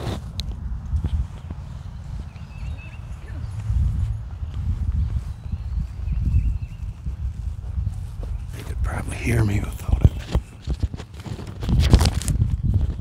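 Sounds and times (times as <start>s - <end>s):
wind buffeting microphone: 0.0s - 13.0s
faint bird chirps: 5.2s - 9.0s.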